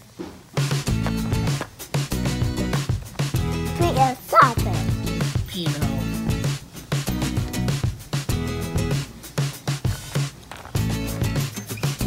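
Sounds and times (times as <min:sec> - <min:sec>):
background music: 0:00.5 - 0:12.0
small dog yipping: 0:04.3 - 0:04.7.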